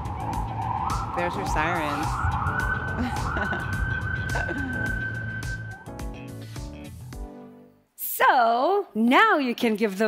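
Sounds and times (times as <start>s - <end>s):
emergency vehicle siren wailing: 0.0s - 6.0s.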